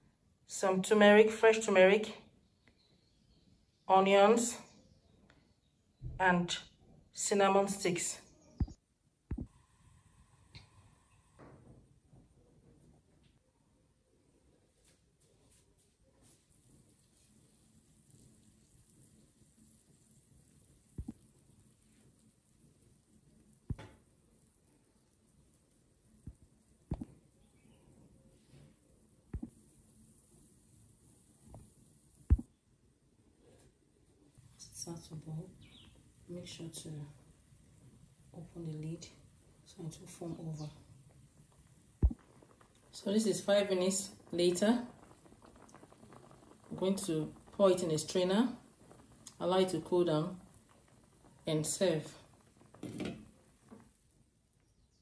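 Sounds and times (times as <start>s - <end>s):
foam fizzing and bubbling: 16.0s - 32.6s, 33.3s - 54.6s.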